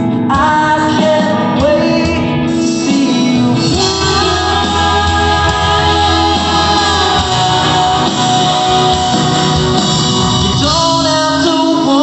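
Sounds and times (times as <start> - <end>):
guitars: 0.0 - 12.0
person singing: 0.3 - 12.0
bass line: 1.4 - 12.0.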